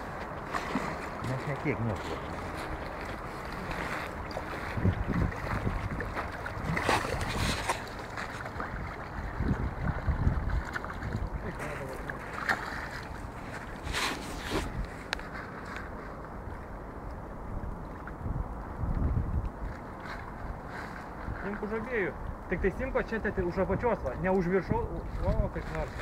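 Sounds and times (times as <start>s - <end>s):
wind buffeting microphone: 0.0s - 15.3s, 16.2s - 26.0s.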